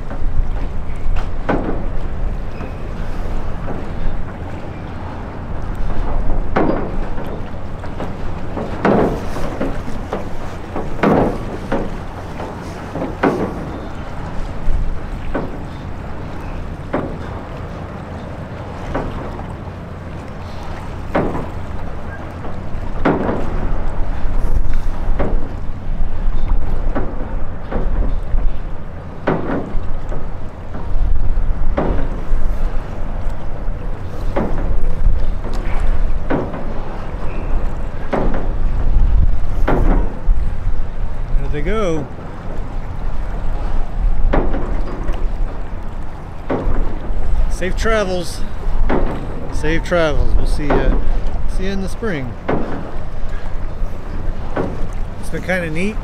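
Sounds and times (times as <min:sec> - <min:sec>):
wind rumble on microphone: 0:00.0 - 0:55.2.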